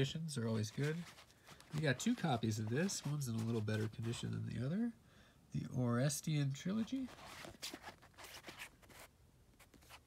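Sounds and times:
paper book covers rustling: 0.0 - 4.4, 6.8 - 10.0.

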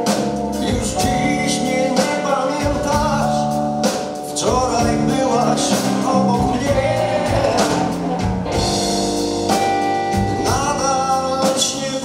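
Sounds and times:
blues-rock band playing: 0.0 - 12.0
man singing: 0.5 - 3.6, 4.2 - 8.9, 10.2 - 12.0.

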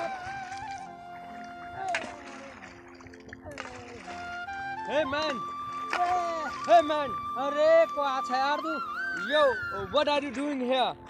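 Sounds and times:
music with long held notes: 0.0 - 11.0
stone splashing into water: 1.8 - 4.3, 5.8 - 6.7.

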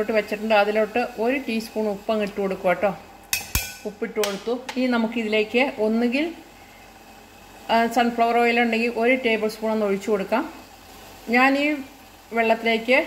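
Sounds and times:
metal spoon clinking on pot: 3.3 - 3.9.

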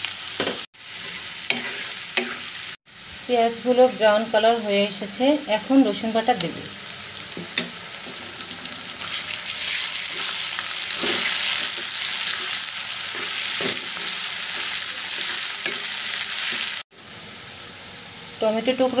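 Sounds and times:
vegetables sizzling in hot oil: 0.0 - 19.0.

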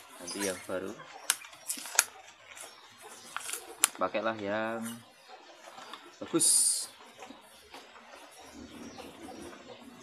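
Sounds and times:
paper wrapping rustling: 1.5 - 4.0.

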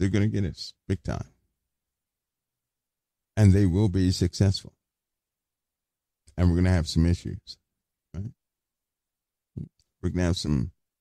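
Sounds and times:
man speaking: 0.0 - 1.4, 3.4 - 4.8, 6.3 - 7.6, 8.2 - 8.4, 9.6 - 10.8.

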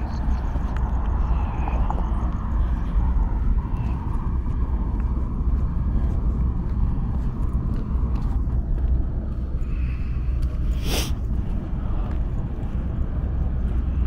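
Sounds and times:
distant traffic rumble: 0.0 - 14.0.

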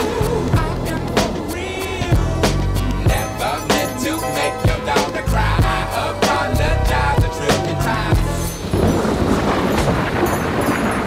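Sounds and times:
steady rain falling: 7.7 - 11.0
low rumble of thunder: 8.6 - 11.0.

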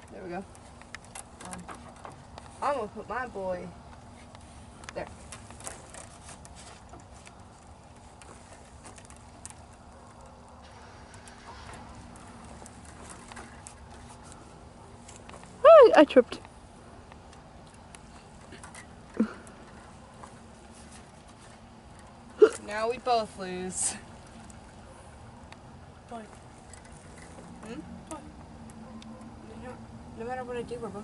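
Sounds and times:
light clicks of spinner blocks: 0.0 - 15.6, 16.2 - 29.4
low background noise: 0.0 - 31.0.

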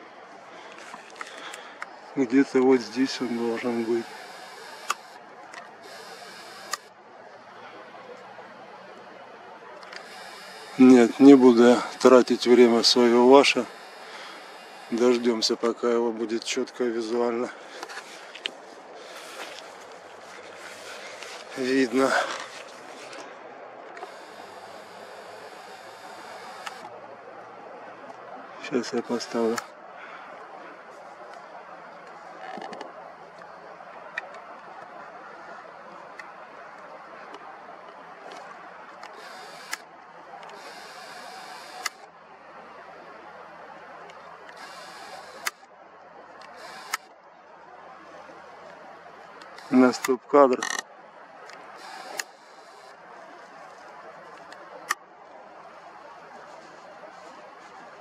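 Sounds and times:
low hiss of background noise: 0.0 - 58.0
camera zoom motor whirring: 3.2 - 6.9, 9.8 - 12.1, 13.4 - 15.2, 24.0 - 26.9, 39.0 - 39.8, 40.4 - 42.0, 44.5 - 45.6, 46.5 - 47.1, 49.4 - 49.8, 51.7 - 53.0
small ticks: 3.9 - 6.9, 23.9 - 26.9, 38.3 - 39.8, 40.4 - 42.0, 44.1 - 45.7, 46.4 - 47.1, 51.4 - 53.0
sharp lens click: 4.0 - 5.2, 5.9 - 6.9, 39.1 - 39.8, 40.4 - 42.0, 46.5 - 47.1, 51.5 - 52.9.

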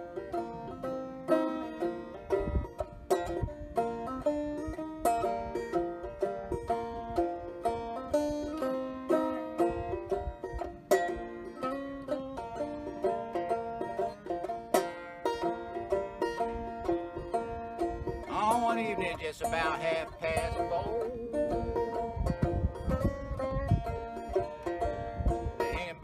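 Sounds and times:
banjo playing: 0.0 - 26.0.

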